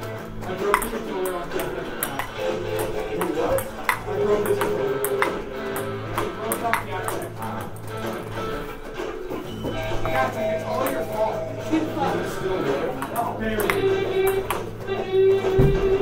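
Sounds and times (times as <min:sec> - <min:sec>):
background music: 0:00.0 - 0:16.0
ping-pong ball clicking off paddles: 0:00.4 - 0:08.6, 0:09.9 - 0:11.4, 0:12.6 - 0:14.9.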